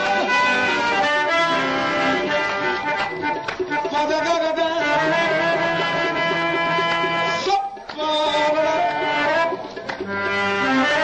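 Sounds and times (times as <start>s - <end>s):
harmonium playing held notes: 0.0s - 11.0s.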